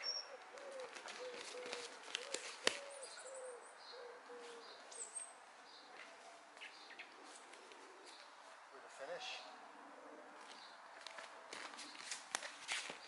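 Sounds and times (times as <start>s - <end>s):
bird cooing: 0.0s - 5.2s, 5.9s - 10.6s
small birds chirping: 0.0s - 11.0s.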